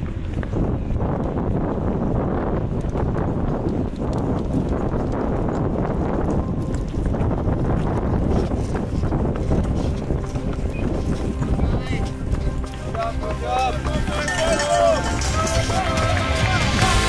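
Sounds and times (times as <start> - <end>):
bikes rolling over gravel: 0.0 - 17.0
background music: 6.8 - 17.0
people shouting: 13.1 - 17.0.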